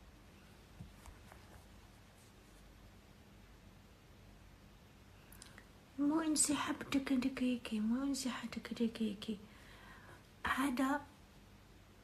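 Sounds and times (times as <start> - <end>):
faint steady hum: 0.0 - 12.0
faint small clicks: 5.3 - 5.7.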